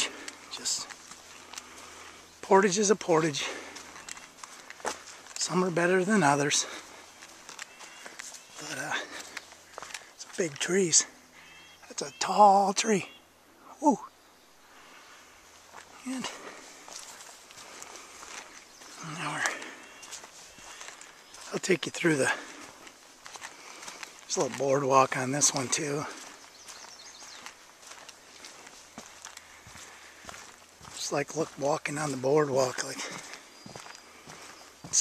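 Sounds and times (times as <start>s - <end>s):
footsteps on dirt trail: 0.0s - 13.1s, 14.6s - 35.0s.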